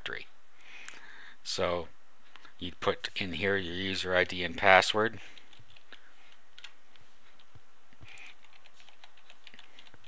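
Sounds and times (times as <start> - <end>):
low background hiss: 0.0 - 10.0
computer keyboard typing: 5.3 - 6.8, 7.4 - 10.0.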